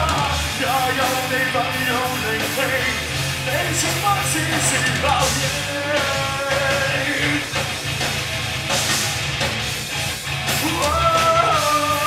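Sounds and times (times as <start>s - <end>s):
bass guitar: 0.0s - 12.0s
drum kit: 0.0s - 12.0s
electric guitar: 0.0s - 12.0s.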